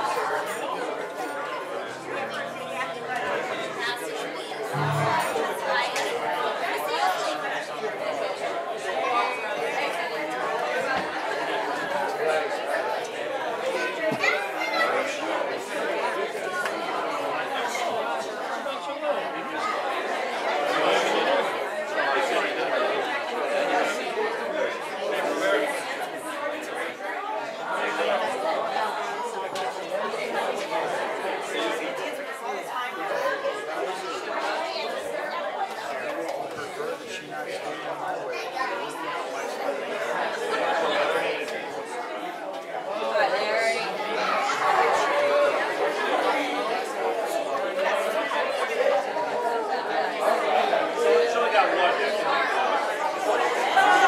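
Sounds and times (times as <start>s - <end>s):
congregation chatting: 0.0s - 54.0s.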